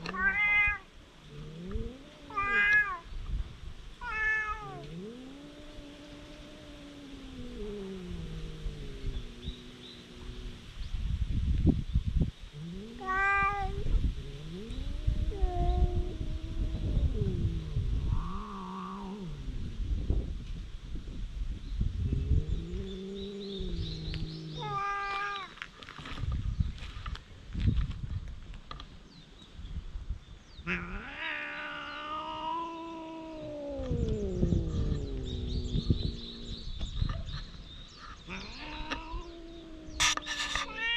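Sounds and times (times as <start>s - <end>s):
cats yowling: 0.0s - 0.9s, 1.6s - 3.1s, 4.0s - 10.6s, 12.8s - 19.7s, 22.8s - 25.6s, 30.7s - 37.4s, 38.2s - 40.9s.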